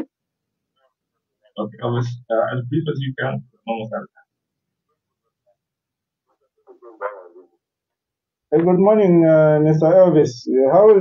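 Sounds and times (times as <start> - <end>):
dog barking: 6.7 - 7.6.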